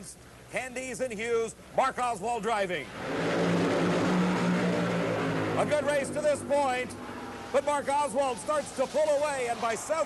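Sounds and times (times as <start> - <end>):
dragster engines at full throttle: 2.8 - 10.0.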